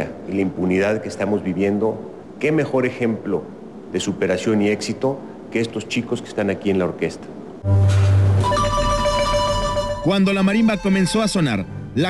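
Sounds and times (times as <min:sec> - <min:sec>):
marimba and orchestra playing: 0:08.0 - 0:11.7.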